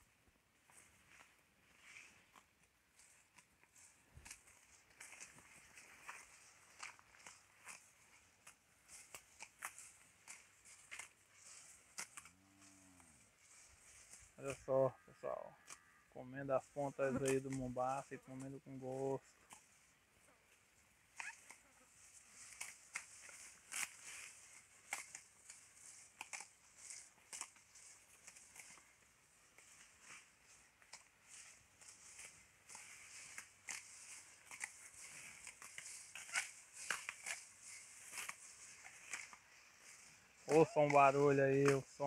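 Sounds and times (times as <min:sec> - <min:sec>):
cows tearing and chewing grass: 0:00.0 - 0:14.7, 0:15.5 - 0:42.0.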